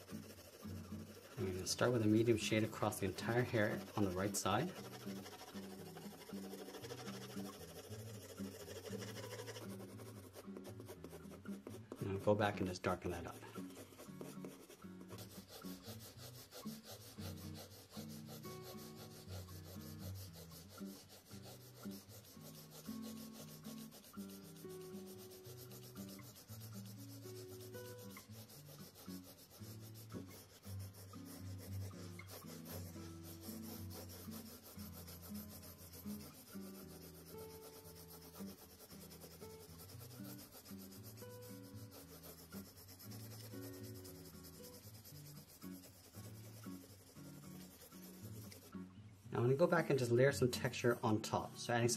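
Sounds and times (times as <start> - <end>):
pencil scratching on paper: 0.0 - 48.7
soft background music: 0.0 - 51.9.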